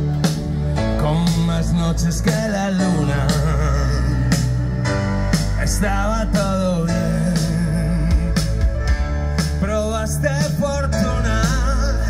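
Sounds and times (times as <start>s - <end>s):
bass line: 0.0s - 12.0s
person singing: 0.8s - 4.8s, 5.5s - 8.8s
drums with cymbal hits: 6.4s - 12.0s.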